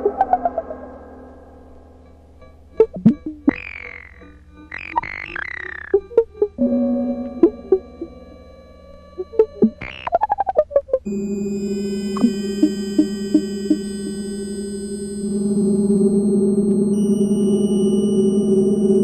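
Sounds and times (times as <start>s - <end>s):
electronic art music: 0.0s - 10.4s, 11.1s - 19.0s.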